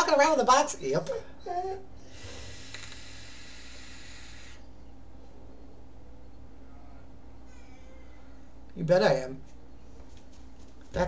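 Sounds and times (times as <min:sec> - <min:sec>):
airy hiss of vape drag: 0:02.1 - 0:04.6.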